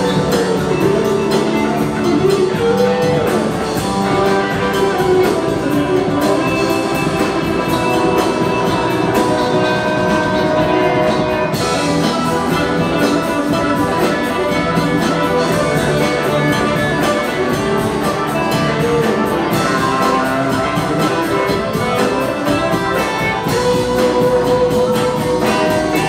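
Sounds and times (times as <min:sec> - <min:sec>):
drums with steady cymbal beat: 0:00.0 - 0:26.0
electric guitar playing: 0:00.0 - 0:26.0.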